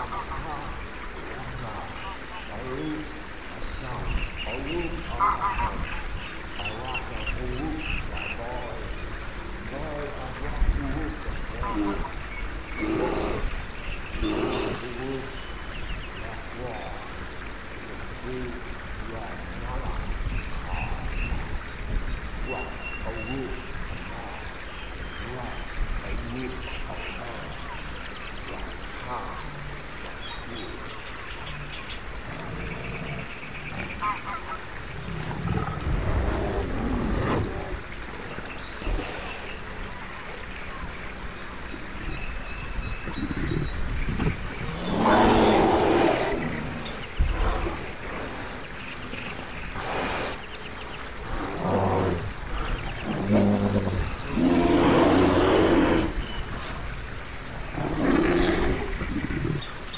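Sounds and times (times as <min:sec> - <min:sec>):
deep growling calls: 0:00.0 - 0:59.9.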